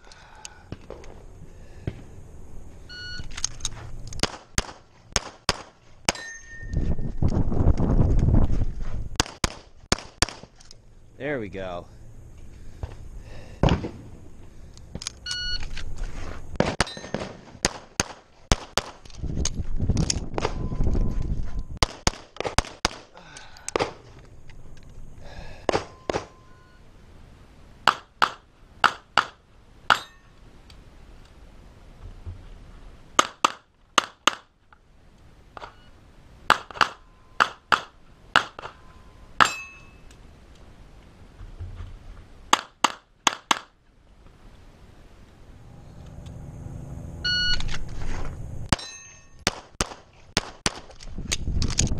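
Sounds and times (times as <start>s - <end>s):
low rumbling noise: 0.0s - 5.2s, 10.8s - 16.6s, 43.9s - 48.7s
pistol shots: 4.2s - 6.2s, 9.2s - 10.5s, 16.6s - 19.0s, 21.8s - 23.1s, 25.7s - 26.4s, 33.2s - 34.5s, 36.5s - 38.8s, 49.4s - 50.9s.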